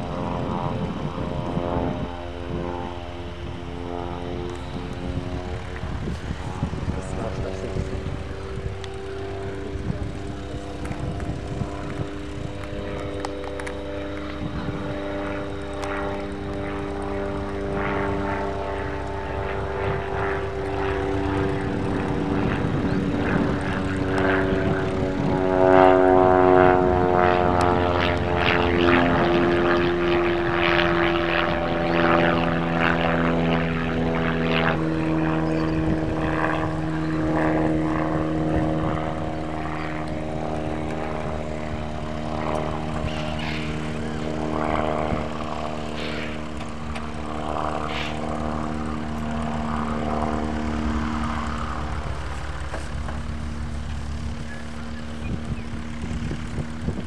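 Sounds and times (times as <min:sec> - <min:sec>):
propeller aircraft engine overhead: 0:00.0 - 0:57.0.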